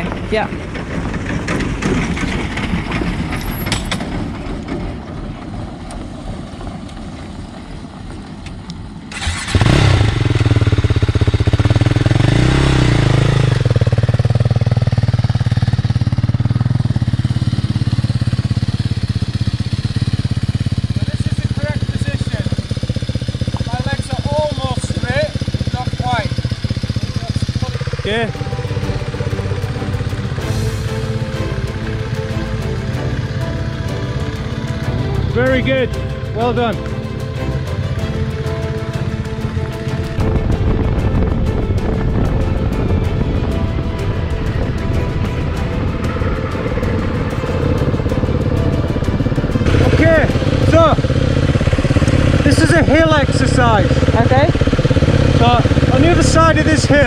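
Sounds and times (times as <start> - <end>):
motorcycle engine running: 0.0 - 57.0
background music: 27.1 - 57.0.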